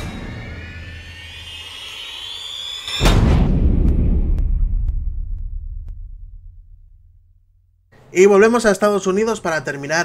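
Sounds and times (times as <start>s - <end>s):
whooshing whine rising in pitch: 0.0s - 6.6s
loud boom: 0.0s - 7.7s.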